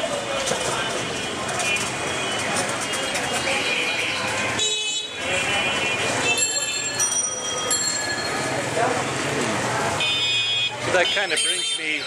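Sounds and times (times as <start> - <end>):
street traffic: 0.0 - 12.0
voices: 0.0 - 12.0
vehicle horns honking: 0.9 - 6.8, 9.9 - 12.0.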